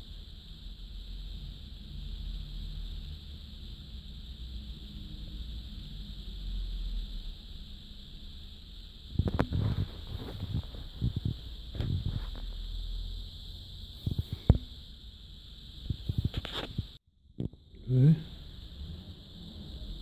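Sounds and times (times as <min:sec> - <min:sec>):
steady high-pitched whine: 0:00.0 - 0:20.0.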